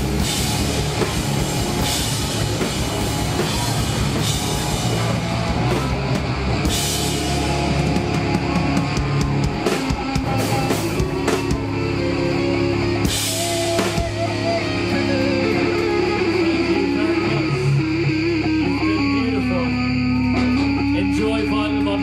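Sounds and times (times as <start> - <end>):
grunge rock band playing: 0.0 - 22.0
guitar sliding down in pitch: 0.0 - 22.0.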